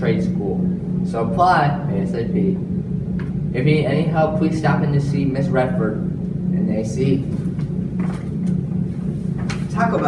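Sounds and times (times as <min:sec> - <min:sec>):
low hum with rumble: 0:00.0 - 0:10.0.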